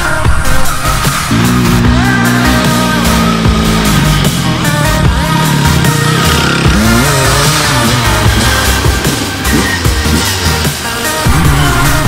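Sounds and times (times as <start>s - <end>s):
loud background music: 0.0s - 12.0s
dirt bike engine revving: 0.8s - 12.0s.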